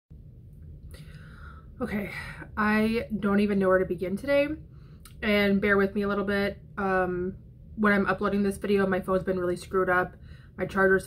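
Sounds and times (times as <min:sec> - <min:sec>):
low room rumble: 0:00.1 - 0:11.0
woman speaking: 0:01.8 - 0:11.0.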